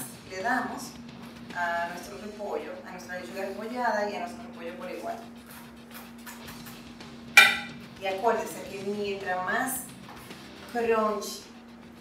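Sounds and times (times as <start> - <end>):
kitchen utensil clink: 7.4 - 7.7.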